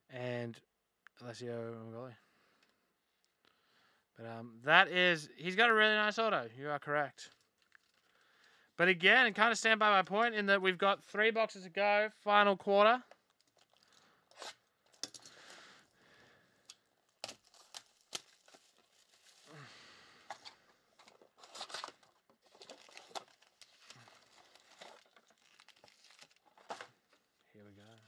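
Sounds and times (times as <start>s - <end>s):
plastic wrap crinkling and tearing: 7.2s - 8.6s, 13.1s - 15.6s, 16.6s - 28.0s
foil packs rustling: 17.1s - 28.0s.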